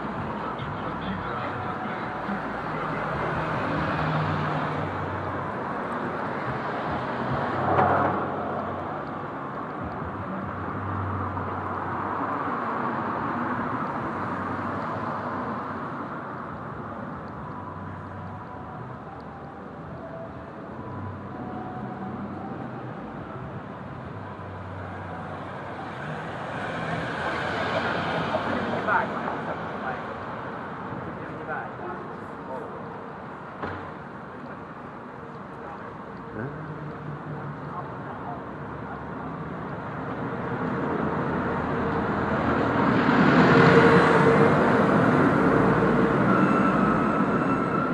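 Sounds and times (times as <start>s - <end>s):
street traffic hum: 0.0s - 47.9s.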